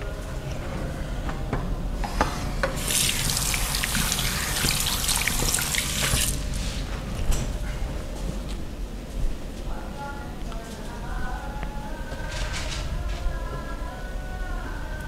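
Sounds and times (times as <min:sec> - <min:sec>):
tap water running into sink: 0:02.8 - 0:06.4.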